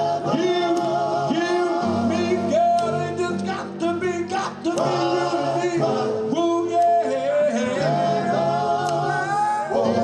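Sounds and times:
instrumental backing: 0:00.0 - 0:10.0
male vocal group singing in harmony: 0:00.0 - 0:10.0.

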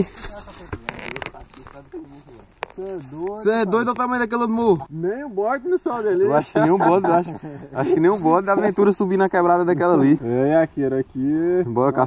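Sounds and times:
footsteps on dry leaves: 0:00.0 - 0:04.1.

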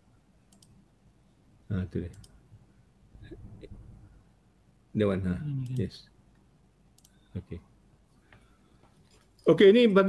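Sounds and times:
faint clicks: 0:00.5 - 0:00.8, 0:02.1 - 0:02.4, 0:05.6 - 0:07.2.

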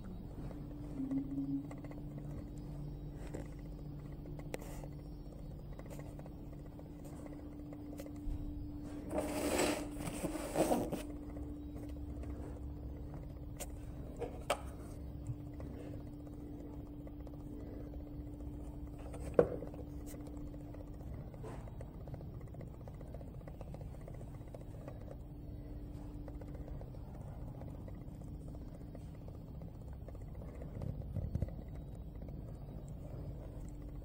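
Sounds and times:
machine hum: 0:00.0 - 0:34.0.

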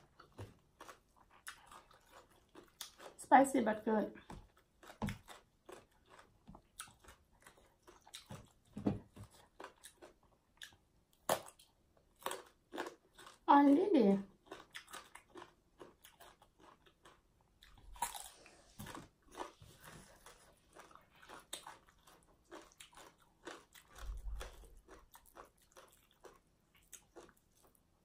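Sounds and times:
crisp bites and wet chewing: 0:04.2 - 0:13.4, 0:14.4 - 0:27.8.

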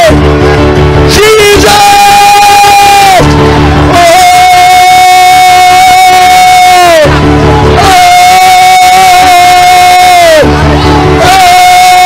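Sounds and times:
long high held cry: 0:00.0 - 0:00.2, 0:01.2 - 0:03.3, 0:03.9 - 0:10.6, 0:11.2 - 0:12.0
music: 0:00.0 - 0:12.0.

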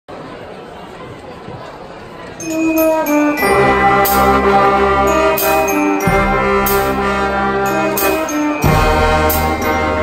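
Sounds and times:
crowd chatter in a hall: 0:00.1 - 0:10.0.

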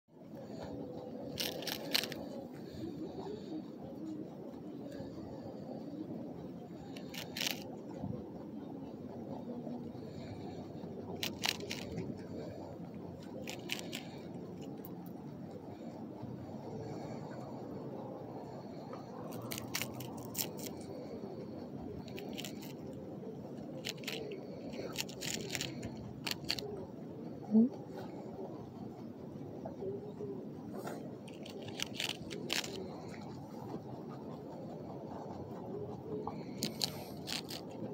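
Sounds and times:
low background noise: 0:00.1 - 0:37.9
rabbit chewing lettuce: 0:00.3 - 0:03.7, 0:06.7 - 0:07.9, 0:09.7 - 0:17.7, 0:18.9 - 0:27.0, 0:30.7 - 0:37.9.

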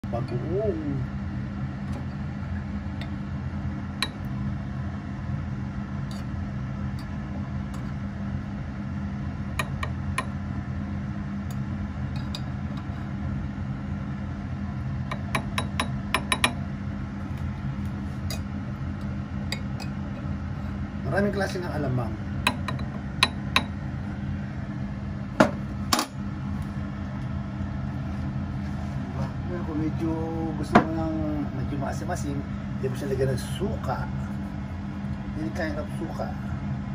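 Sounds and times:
low mechanical hum: 0:00.0 - 0:36.9.

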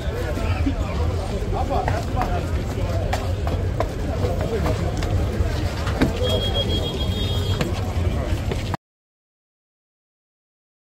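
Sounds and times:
group of people talking: 0:00.0 - 0:08.8.

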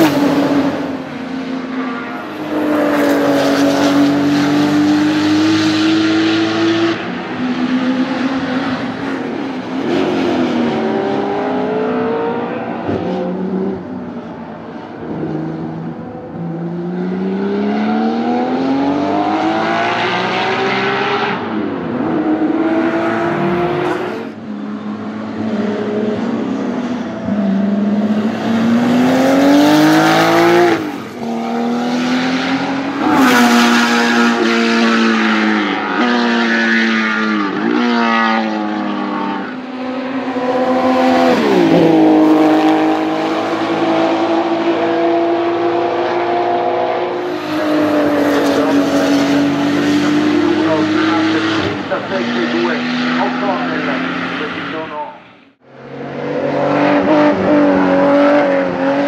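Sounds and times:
race car engine accelerating: 0:00.0 - 0:59.0.

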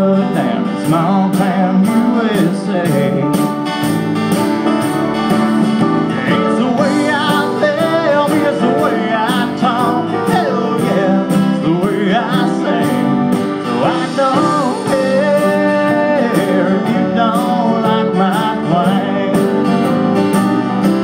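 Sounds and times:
acoustic guitar: 0:00.0 - 0:21.0
live country band: 0:00.0 - 0:21.0.

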